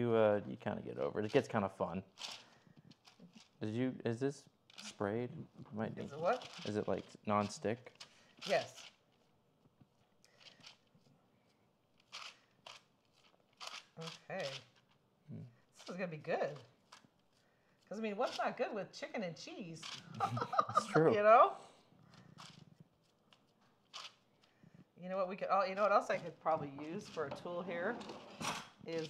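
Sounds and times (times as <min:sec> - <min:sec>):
soft rustles: 0:21.8 - 0:29.0
faint rustle of hands pressing: 0:21.9 - 0:25.0.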